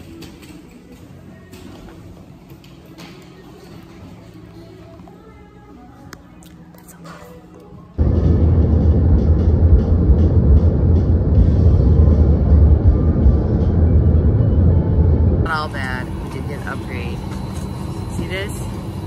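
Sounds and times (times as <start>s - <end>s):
cabin hum: 7.9s - 19.0s
jet airliner rumble: 8.0s - 19.0s
woman talking: 15.5s - 17.3s, 18.0s - 18.8s.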